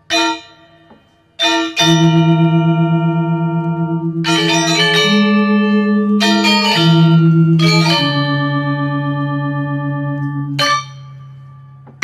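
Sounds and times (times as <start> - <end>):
bright metallic strikes: 0.0 - 12.0
gamelan playing: 1.4 - 12.0.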